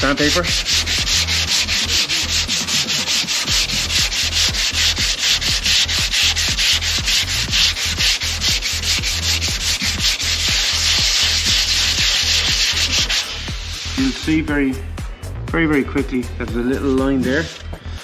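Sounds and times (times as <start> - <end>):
sandpaper rubbing back and forth: 0.0 - 14.5, 16.6 - 18.0.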